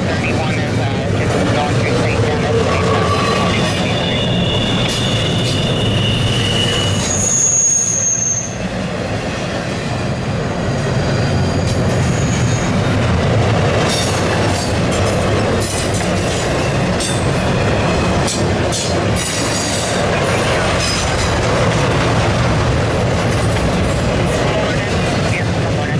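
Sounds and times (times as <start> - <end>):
freight train wheels rumbling: 0.0 - 25.9
wheel squeals: 2.4 - 12.8.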